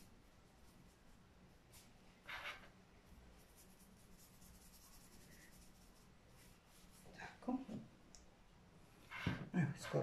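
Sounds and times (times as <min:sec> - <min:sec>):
paintbrush strokes scratching: 0:00.0 - 0:07.2.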